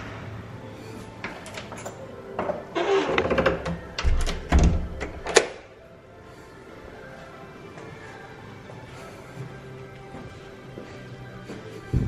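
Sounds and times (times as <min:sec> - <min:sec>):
door clicks and knocks: 0:02.4 - 0:05.5
heavy door thuds: 0:04.0 - 0:05.0.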